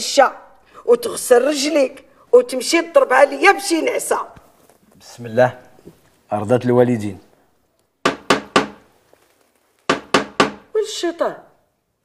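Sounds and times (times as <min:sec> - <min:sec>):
knocking on a door: 0:08.0 - 0:08.8, 0:09.9 - 0:10.7.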